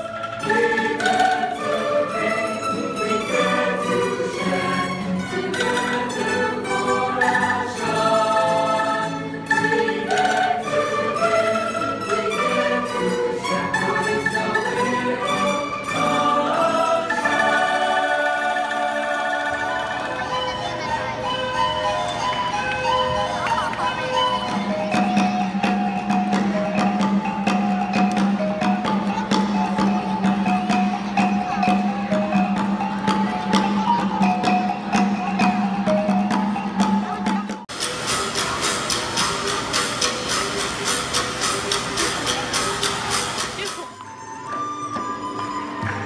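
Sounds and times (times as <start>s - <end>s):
bamboo percussion clacks: 0.0s - 7.5s, 9.5s - 16.2s, 21.3s - 46.0s.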